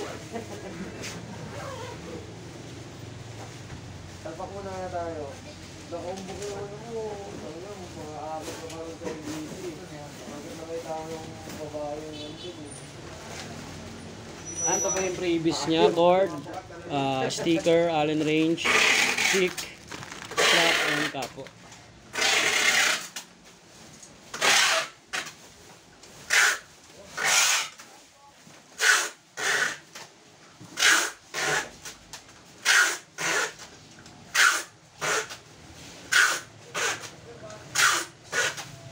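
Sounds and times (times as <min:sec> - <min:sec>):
rhythmic rubbing strokes: 0:20.3 - 0:21.2.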